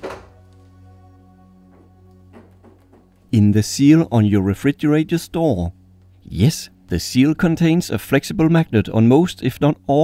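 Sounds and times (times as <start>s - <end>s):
refrigerator door seal thunk: 0.0s - 0.4s
soft background music: 0.0s - 10.0s.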